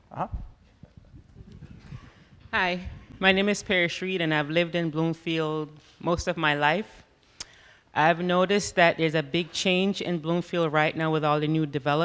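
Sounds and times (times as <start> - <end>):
rustling room noise: 0.0 - 3.9.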